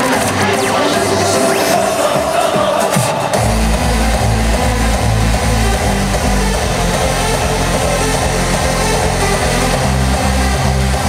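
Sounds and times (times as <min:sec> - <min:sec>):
heavy pulsing bass: 0:00.0 - 0:11.0
loud hardstyle dance music: 0:00.0 - 0:11.0.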